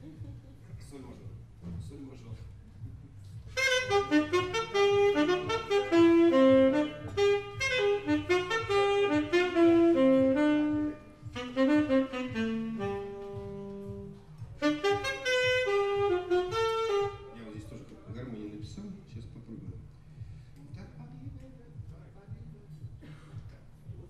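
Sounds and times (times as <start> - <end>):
saxophone melody: 3.5 - 17.9.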